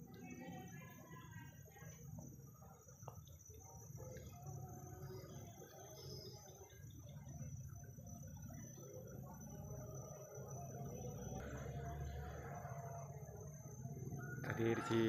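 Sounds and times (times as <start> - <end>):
high-pitched insect drone: 0.0 - 15.0.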